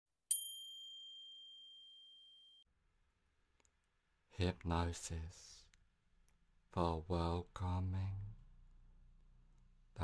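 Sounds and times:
high bell-like chime: 0.3 - 2.7.

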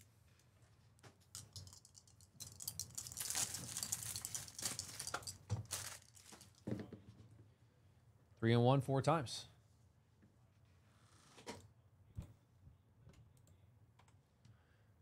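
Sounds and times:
wrapping crinkling and tearing: 2.5 - 6.6.

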